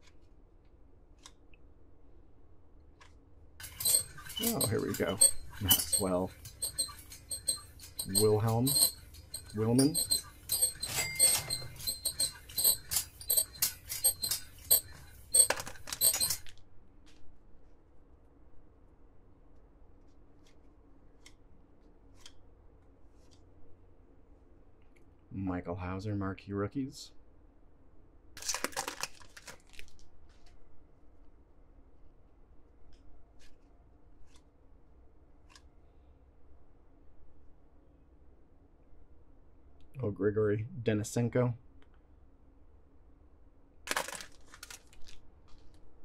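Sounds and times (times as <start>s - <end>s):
comic high squeaks and clicks: 3.6s - 16.4s
cards and wrapper rustling: 28.4s - 30.5s, 43.9s - 45.8s.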